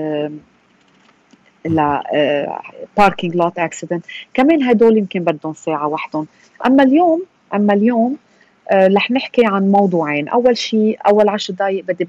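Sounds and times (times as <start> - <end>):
person making bending vocal sounds: 1.7 - 2.0.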